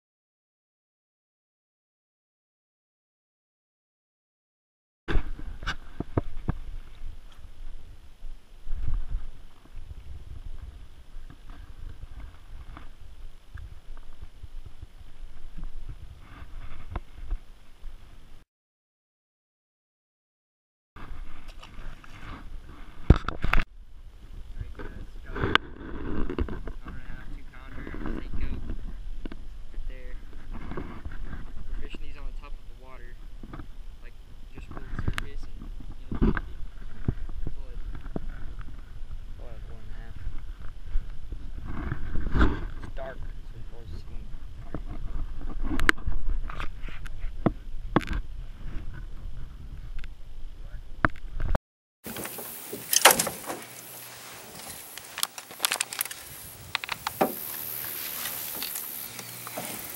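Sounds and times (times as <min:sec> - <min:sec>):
wind rumble on microphone: 0:05.1 - 0:18.4, 0:21.0 - 0:51.6.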